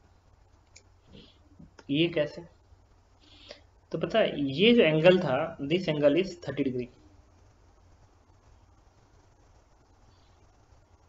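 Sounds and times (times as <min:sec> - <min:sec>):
low steady hum: 0:00.0 - 0:11.0.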